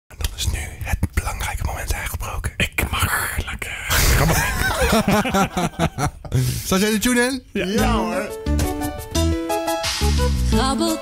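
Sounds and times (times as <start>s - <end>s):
person whispering: 0.1s - 4.1s.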